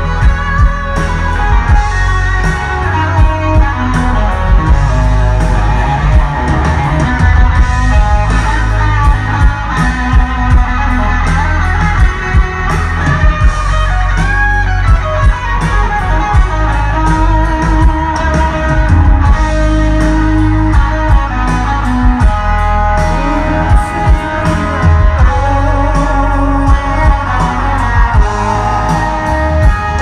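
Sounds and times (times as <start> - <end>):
bass: 0.0 - 30.0
drums: 0.0 - 30.0
electric guitar lead lines: 0.0 - 30.0.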